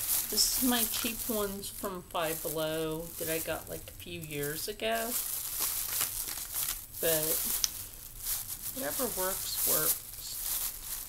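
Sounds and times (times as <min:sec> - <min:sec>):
crinkling and rustling: 0:00.0 - 0:11.0.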